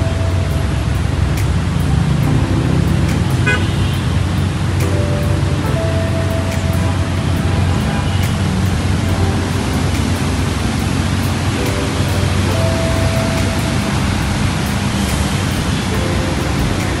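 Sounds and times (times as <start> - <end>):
faint background music: 0.0 - 17.0
steady loud rushing noise: 0.0 - 17.0.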